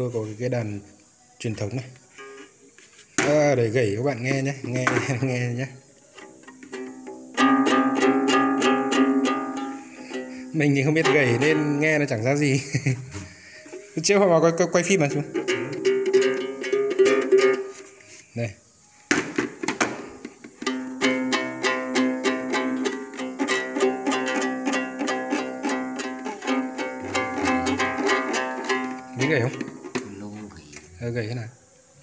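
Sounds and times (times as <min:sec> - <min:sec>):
lute plucked rapidly: 0:07.1 - 0:12.5, 0:14.9 - 0:17.7, 0:20.6 - 0:30.0.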